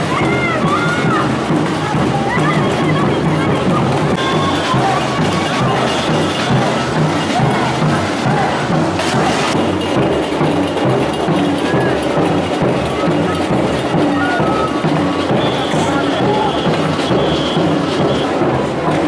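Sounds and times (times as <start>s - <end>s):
crowd voices: 0.0s - 19.0s
samba percussion band drumming: 0.0s - 19.0s.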